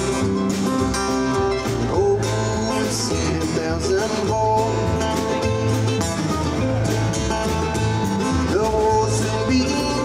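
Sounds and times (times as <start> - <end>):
acoustic guitar: 0.0 - 10.0
drums: 0.0 - 10.0
upright bass: 0.0 - 10.0
man singing: 1.7 - 5.8, 8.2 - 10.0.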